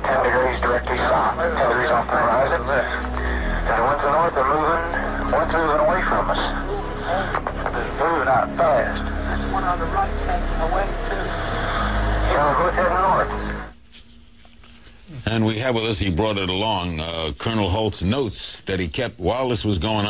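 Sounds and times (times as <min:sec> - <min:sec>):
low rumble and tape hiss: 0:00.0 - 0:20.0.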